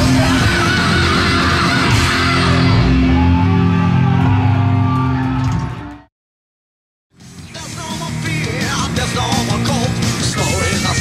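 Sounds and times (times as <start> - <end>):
drums: 0.0 - 5.9, 7.1 - 11.0
bass guitar: 0.0 - 6.0, 7.2 - 11.0
distorted electric guitars: 0.0 - 6.0, 7.2 - 11.0.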